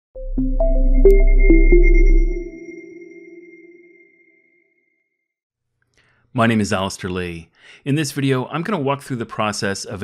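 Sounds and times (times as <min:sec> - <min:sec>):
bell-like struck notes: 0:00.2 - 0:04.2
thin high tone: 0:00.4 - 0:04.6.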